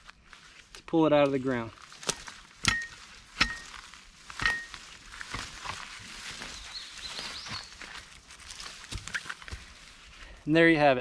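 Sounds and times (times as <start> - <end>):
rustling in grass: 0.0 - 11.0.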